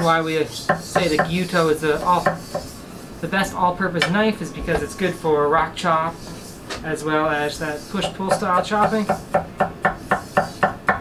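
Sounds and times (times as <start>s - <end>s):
knife chopping on wooden board: 8.0s - 11.0s.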